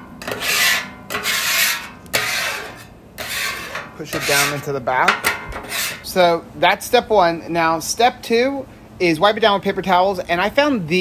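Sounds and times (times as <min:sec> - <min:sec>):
scraper scraping steel griddle: 0:00.0 - 0:06.2.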